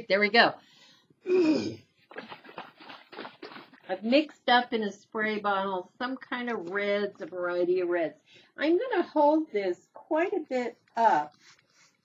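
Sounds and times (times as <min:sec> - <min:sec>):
person sighing: 0:01.2 - 0:01.9.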